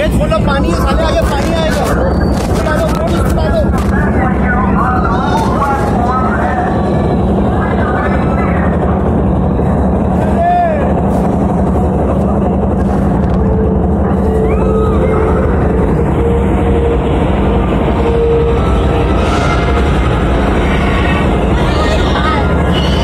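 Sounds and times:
people's voices: 0.0 - 23.0
ride machinery rumble: 0.0 - 23.0
steady higher tone: 0.0 - 23.0.

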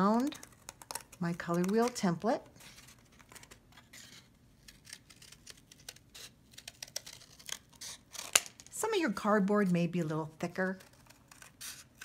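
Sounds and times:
scissors cutting cardboard: 0.1 - 8.5, 10.5 - 12.0.

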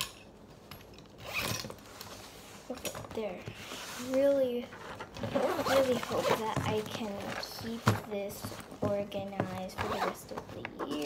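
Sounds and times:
zipper being pulled: 1.2 - 1.8, 5.1 - 6.5, 9.8 - 11.0.

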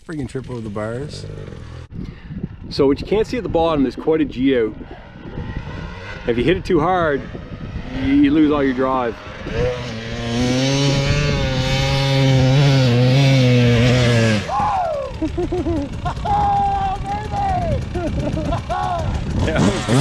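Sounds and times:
dirt bike throttle blips: 0.0 - 20.0
dirt bike engine at high revs: 0.8 - 20.0.

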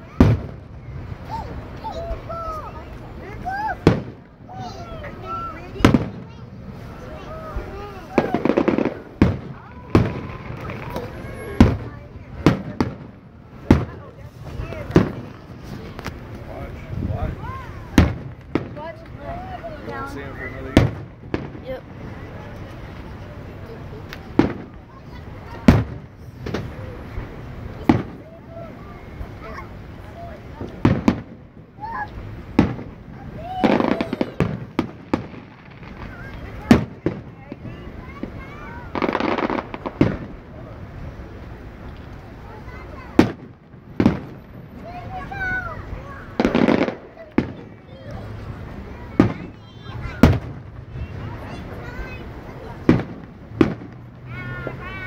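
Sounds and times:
fireworks bangs: 0.0 - 55.0
fireworks crackle and rumble: 0.0 - 55.0.

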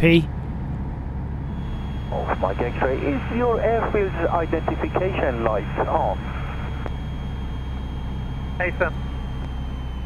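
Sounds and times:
aircraft engine drone: 0.0 - 10.0.

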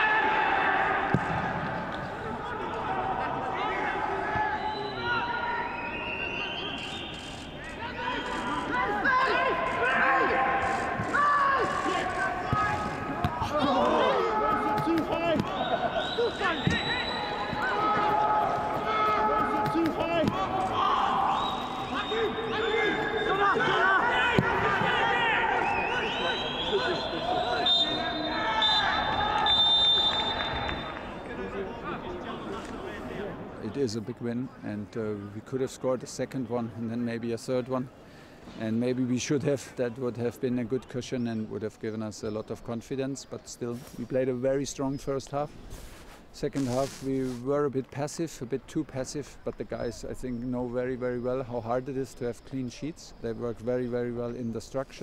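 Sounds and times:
footballers shouting: 7.9 - 31.1.

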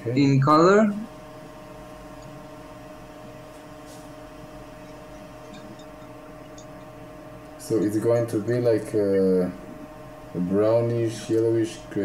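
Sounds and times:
electrical hum with fixed tones: 0.0 - 12.0.

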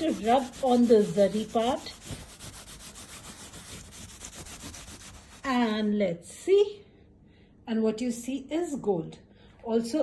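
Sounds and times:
woman speaking: 0.0 - 2.1, 5.4 - 6.9, 7.7 - 10.0
stone rubbing on fabric: 0.0 - 5.6.

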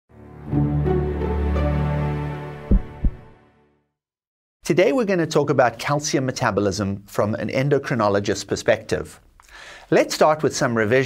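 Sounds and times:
deep thuds: 2.7 - 3.3.

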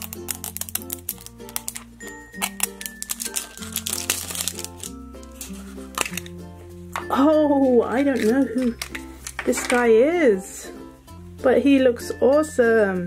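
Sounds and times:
plastic capsule clicking and crinkling: 0.0 - 6.4, 8.0 - 9.9.

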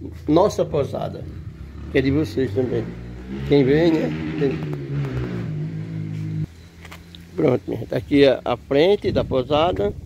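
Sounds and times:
low motor hum: 1.2 - 7.4.

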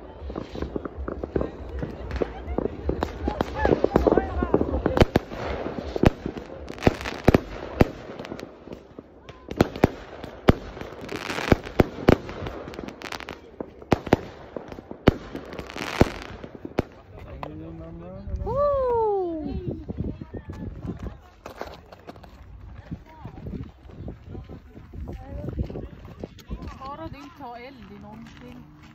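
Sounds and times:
fireworks crackling hiss: 0.0 - 17.1
fireworks bangs: 0.0 - 17.5.

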